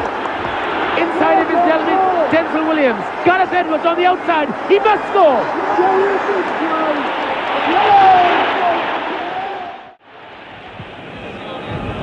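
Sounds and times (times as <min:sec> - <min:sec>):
stadium crowd cheering and shouting: 0:00.0 - 0:12.0.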